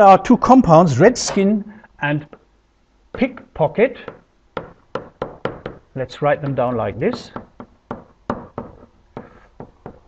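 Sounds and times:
pen tapping on whiteboard: 4.0 - 5.8, 6.4 - 10.0.

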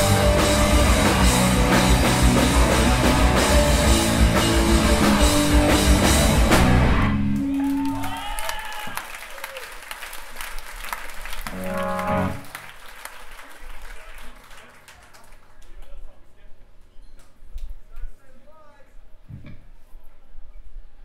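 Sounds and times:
punk band final crash: 0.0 - 8.0
crowd cheering and applauding: 6.3 - 15.8.

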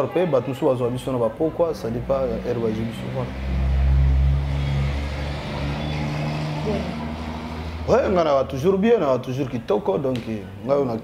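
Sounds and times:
vehicle engine hum: 1.3 - 8.8.

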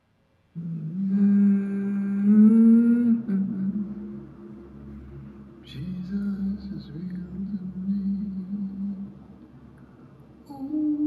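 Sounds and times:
person humming low note: 0.6 - 9.3, 10.4 - 11.0.

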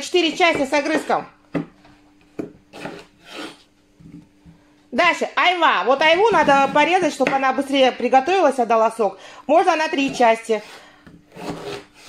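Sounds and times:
knife slicing through pear: 10.1 - 12.0.

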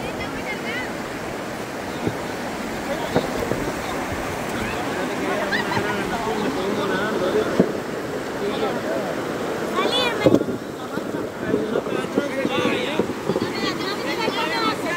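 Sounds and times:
river water rushing and splashing: 0.0 - 14.9
voices calling: 0.0 - 14.9.

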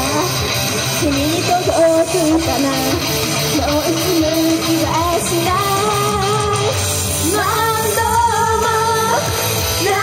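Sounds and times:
loud rock backing music: 0.0 - 10.0
woman singing through a pa: 1.0 - 10.0.

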